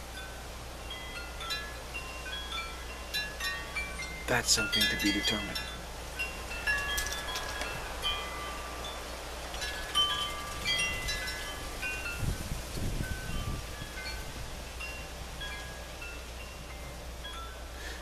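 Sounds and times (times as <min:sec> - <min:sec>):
chimes ringing: 0:00.2 - 0:12.4.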